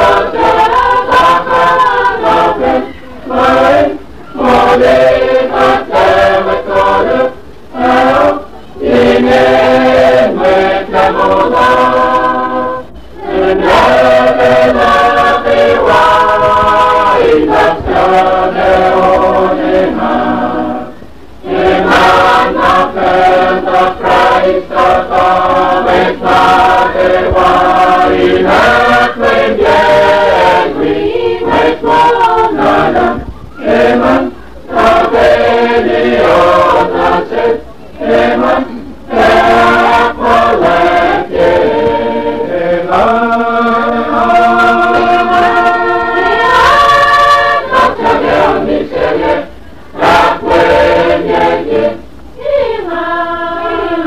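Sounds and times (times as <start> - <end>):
choir singing a hymn: 0.0 - 54.0.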